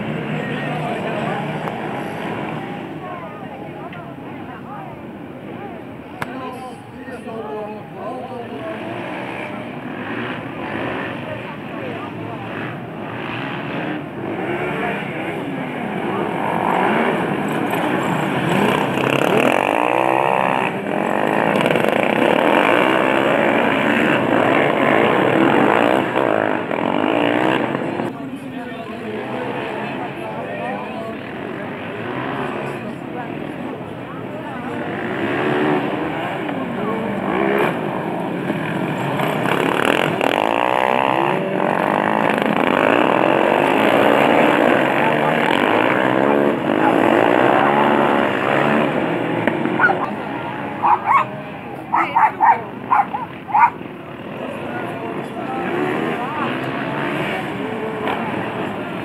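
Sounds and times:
racing lawnmower engines revving: 0:00.0 - 0:59.0.

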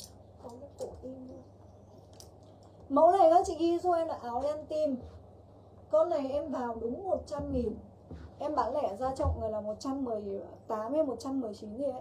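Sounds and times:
woman speaking: 0:00.0 - 0:01.5, 0:02.9 - 0:05.2, 0:05.9 - 0:12.0.

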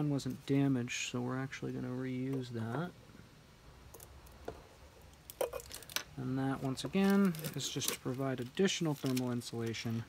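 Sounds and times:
tape crinkling: 0:05.1 - 0:10.0.

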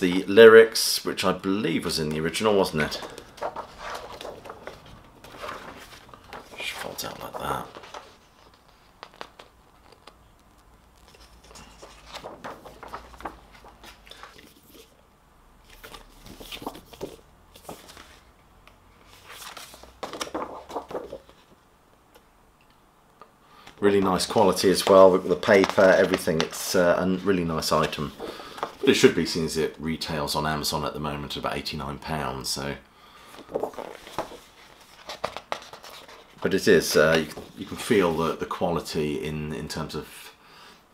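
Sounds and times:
man speaking: 0:00.0 - 0:03.1, 0:06.6 - 0:07.8, 0:23.8 - 0:28.2, 0:28.8 - 0:32.8, 0:36.4 - 0:40.4
paper rustling: 0:01.9 - 0:15.0, 0:15.6 - 0:18.3, 0:19.0 - 0:21.6, 0:23.6 - 0:29.8, 0:33.2 - 0:38.6.

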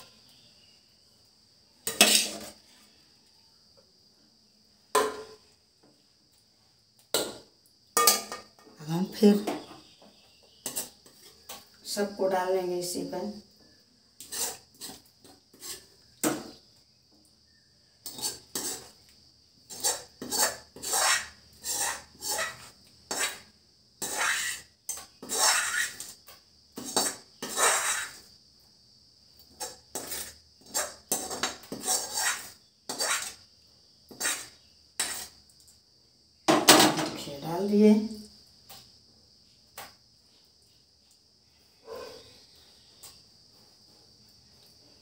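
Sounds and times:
metal spoon scraping pots: 0:01.9 - 0:02.6, 0:10.6 - 0:11.7, 0:14.2 - 0:16.0, 0:18.0 - 0:19.0, 0:19.7 - 0:23.4, 0:24.0 - 0:26.1, 0:26.8 - 0:28.2, 0:29.5 - 0:33.4, 0:34.1 - 0:35.4.

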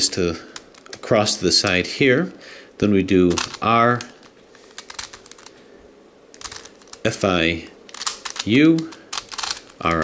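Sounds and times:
plastic puzzle clicking: 0:07.9 - 0:10.0.

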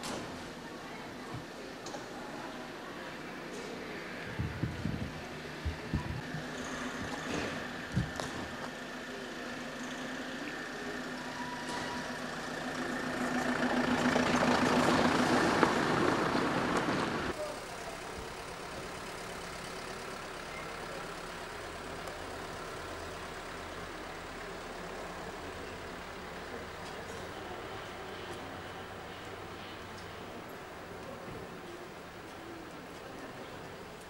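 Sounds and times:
vehicle engine running: 0:03.7 - 0:34.0.

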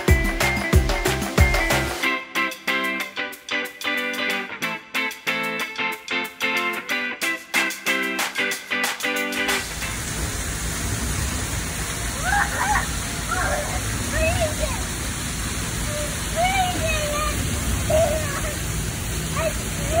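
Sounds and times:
water running and spraying: 0:00.0 - 0:02.0, 0:08.3 - 0:20.0
small child's high calls: 0:12.2 - 0:14.6.

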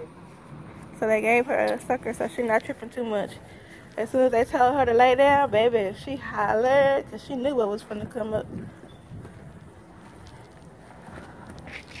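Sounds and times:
footsteps on concrete: 0:07.9 - 0:12.0.

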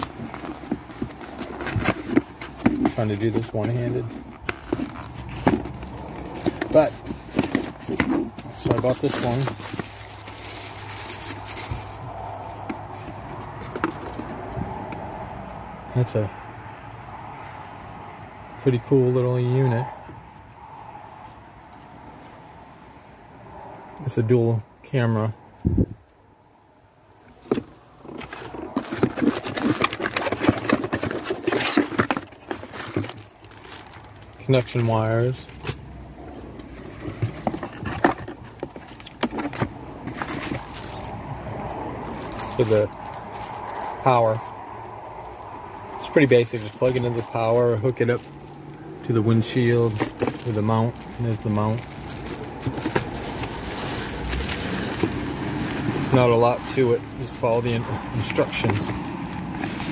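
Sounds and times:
plastic bag crinkling: 0:00.0 - 0:14.3, 0:27.5 - 0:35.6, 0:36.8 - 0:59.9
cardboard box being handled: 0:00.0 - 0:14.6, 0:27.3 - 0:35.8, 0:36.6 - 0:44.6, 0:45.2 - 0:59.9.

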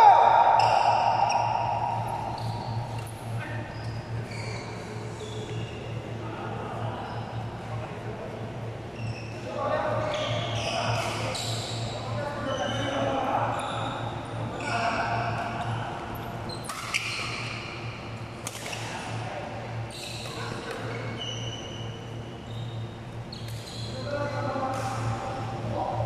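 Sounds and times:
steady low hum: 0:00.0 - 0:26.0
voices talking: 0:00.0 - 0:26.0
shoes squeaking on court floor: 0:00.6 - 0:06.0, 0:09.0 - 0:17.7, 0:19.9 - 0:25.1.

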